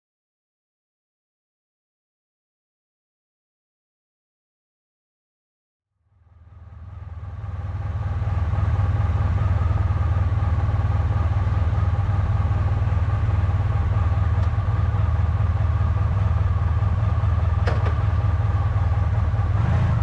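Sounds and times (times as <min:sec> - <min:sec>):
motorcycle engine idling: 0:06.3 - 0:20.0.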